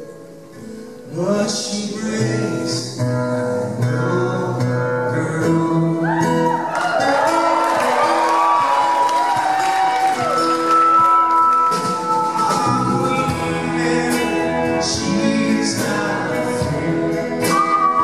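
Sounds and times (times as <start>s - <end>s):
acoustic guitar and band: 0.0s - 18.0s
man singing a slow ballad: 0.6s - 6.6s, 12.5s - 18.0s.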